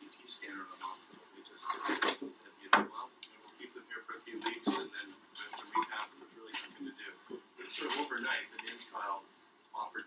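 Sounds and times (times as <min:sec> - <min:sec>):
faint low murmur: 0:00.0 - 0:10.0.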